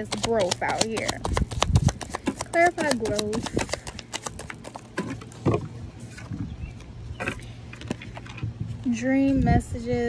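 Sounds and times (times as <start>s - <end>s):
cards being shuffled: 0.0s - 5.4s.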